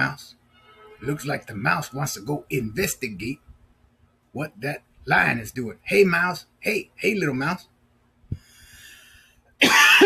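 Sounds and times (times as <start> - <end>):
faint breath: 8.3 - 9.4
man coughing: 9.6 - 10.0.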